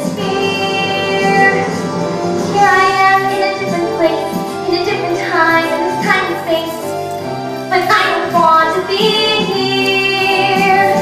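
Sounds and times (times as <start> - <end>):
young woman singing: 0.0 - 6.9, 7.7 - 11.0
musical accompaniment: 0.0 - 11.0.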